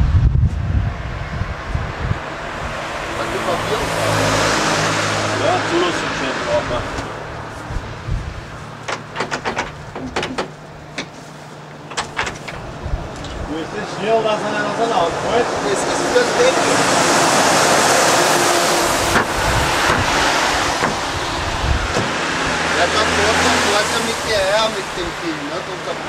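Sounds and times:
vehicle passing by: 0:00.1 - 0:08.9, 0:12.6 - 0:26.0
sharp clicks and knocks: 0:08.8 - 0:13.4, 0:20.8 - 0:21.1.

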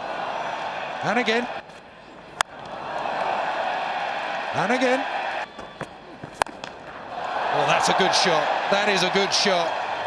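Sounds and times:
stadium crowd cheering: 0:00.0 - 0:01.7, 0:02.5 - 0:06.0, 0:06.8 - 0:10.0
cricket bat hitting ball: 0:05.7 - 0:07.0.

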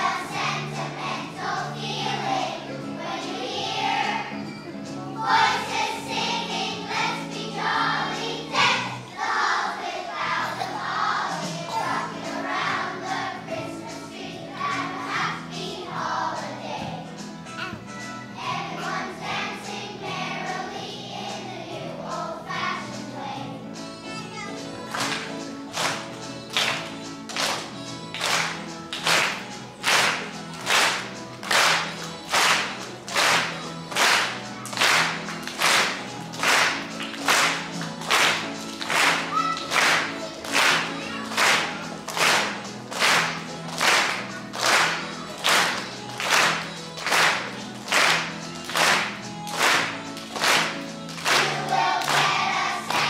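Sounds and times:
children's choir singing: 0:00.0 - 0:53.0
instrumental accompaniment: 0:00.0 - 0:53.0
children clapping in time: 0:24.9 - 0:53.0.

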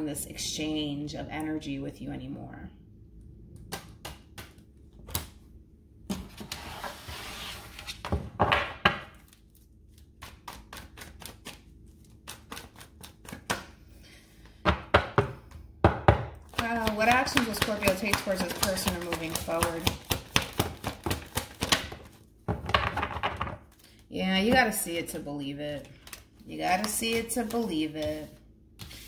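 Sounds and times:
person speaking: 0:16.6 - 0:20.0, 0:24.1 - 0:28.4.

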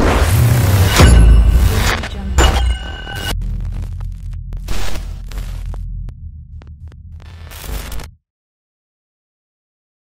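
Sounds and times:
deep low hum: 0:00.2 - 0:08.2
crackling static bursts: 0:03.2 - 0:08.2.

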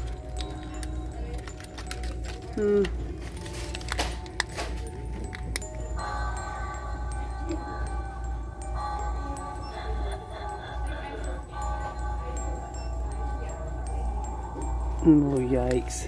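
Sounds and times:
chime-like toy tune: 0:00.0 - 0:16.0
store background music: 0:00.0 - 0:16.0.

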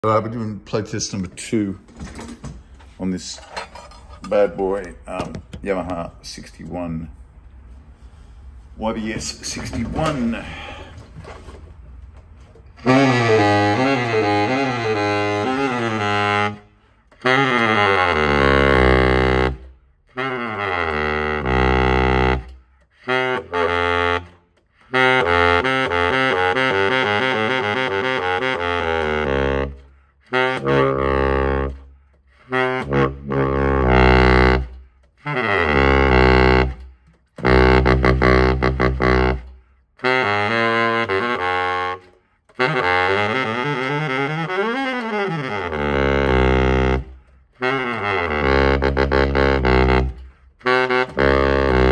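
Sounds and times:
baritone saxophone playing: 0:08.8 - 0:11.0, 0:12.6 - 0:51.9.

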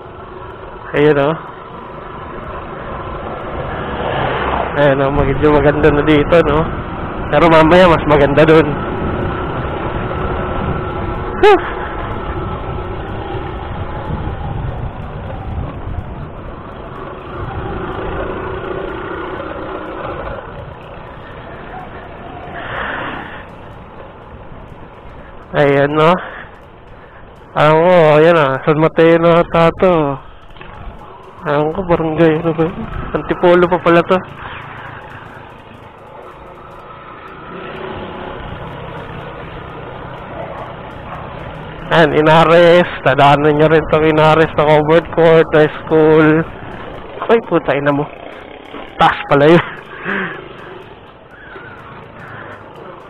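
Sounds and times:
road rumble: 0:00.0 - 0:53.0
scooter engine running: 0:00.0 - 0:53.0
wind on microphone: 0:08.8 - 0:19.1.

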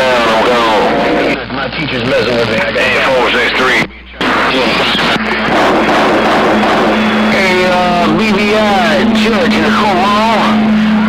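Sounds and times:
garbled radio transmissions: 0:00.0 - 0:11.0
radio static: 0:00.0 - 0:11.0
voice over radio: 0:02.5 - 0:05.4
low carrier hum: 0:03.8 - 0:11.0.

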